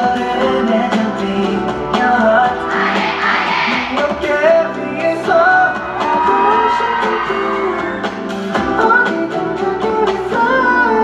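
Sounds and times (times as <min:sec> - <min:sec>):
backing music: 0:00.0 - 0:11.0
male group singing pop song: 0:00.0 - 0:11.0.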